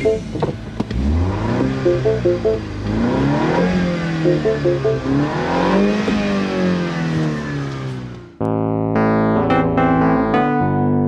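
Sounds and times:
electric piano jingle: 0:00.0 - 0:00.4, 0:01.8 - 0:02.8, 0:04.2 - 0:05.3
car engine revving down: 0:00.0 - 0:08.4.

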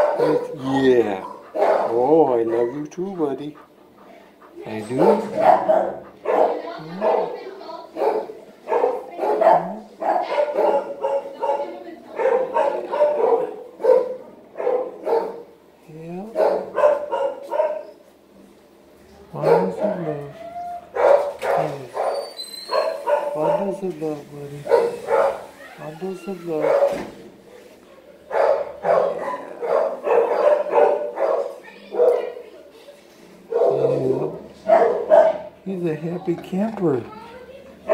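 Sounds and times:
dog barking yipping and whining: 0:00.0 - 0:00.6, 0:01.2 - 0:02.9, 0:04.9 - 0:07.3, 0:16.4 - 0:18.0, 0:19.4 - 0:23.6, 0:24.7 - 0:27.1, 0:28.3 - 0:32.2, 0:34.7 - 0:35.5.

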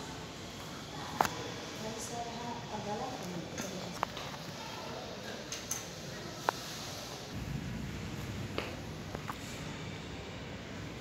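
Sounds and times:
indoor background noise: 0:00.0 - 0:11.0
low rumble: 0:07.3 - 0:10.1.

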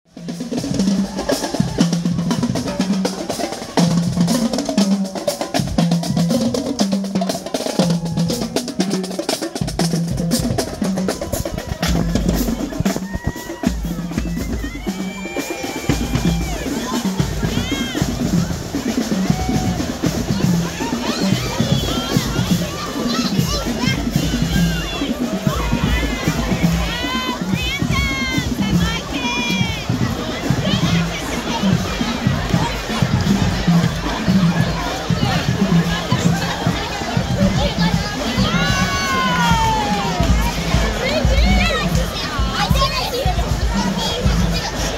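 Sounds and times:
crowd chatter: 0:00.0 - 0:44.9
bass drum beat: 0:00.1 - 0:44.9
marching snare drums: 0:00.1 - 0:44.9
children shouting: 0:00.2 - 0:44.9.

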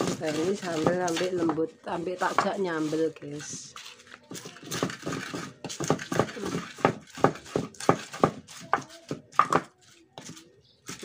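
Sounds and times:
pestle knocking against mortar: 0:00.0 - 0:02.6, 0:04.3 - 0:11.0.

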